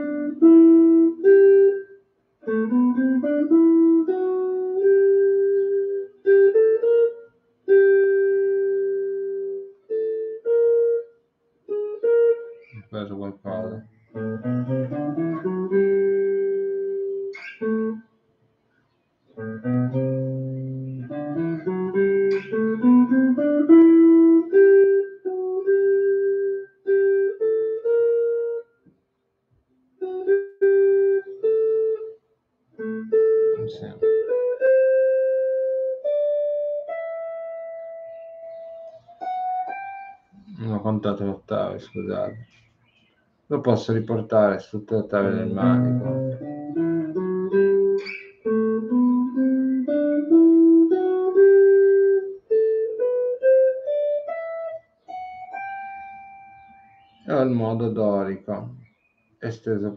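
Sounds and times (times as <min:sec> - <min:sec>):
electric guitar scale: 0:00.0 - 0:18.1, 0:19.4 - 0:28.8, 0:30.0 - 0:32.2, 0:32.8 - 0:42.5, 0:43.5 - 0:58.8.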